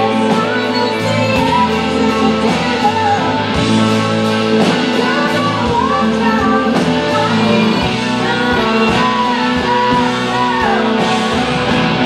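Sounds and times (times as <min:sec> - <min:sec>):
blues-rock band playing: 0:00.0 - 0:12.0
electric guitar bent lead notes: 0:00.0 - 0:12.0.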